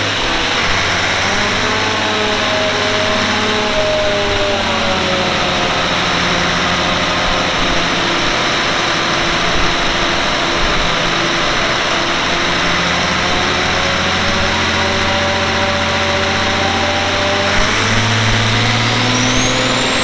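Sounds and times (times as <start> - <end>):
diesel engine running loudly: 0.0 - 20.0.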